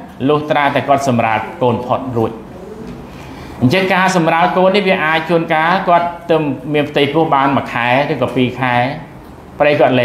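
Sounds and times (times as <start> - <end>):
man speaking: 0.0 - 2.9, 3.6 - 10.0
bird cooing faintly: 2.4 - 3.5.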